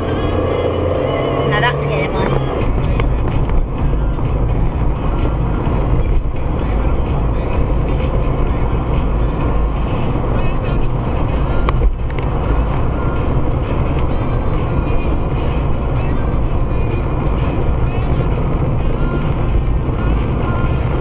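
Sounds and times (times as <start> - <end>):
car engine and tyre rumble: 0.0 - 21.0.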